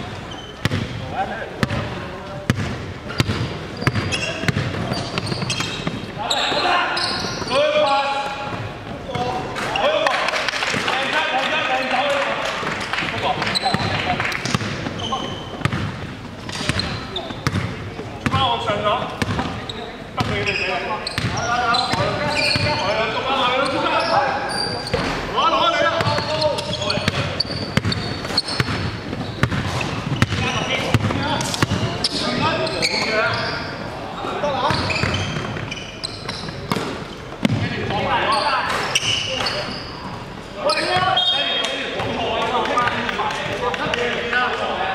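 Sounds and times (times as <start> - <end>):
basketball bouncing on hardwood floor: 2.5 - 6.0, 15.6 - 18.4, 26.0 - 31.9.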